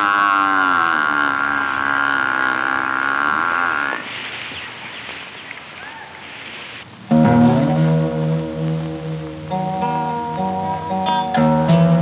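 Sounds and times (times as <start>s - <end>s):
ox mooing: 0.0s - 4.1s.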